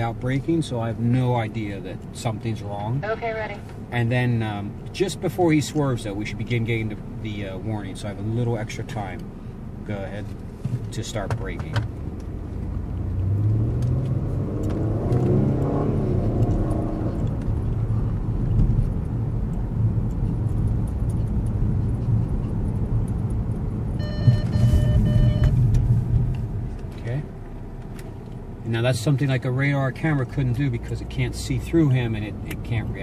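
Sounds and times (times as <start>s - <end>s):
car engine and road noise: 0.0s - 33.0s
electronic warning tone: 24.0s - 25.6s.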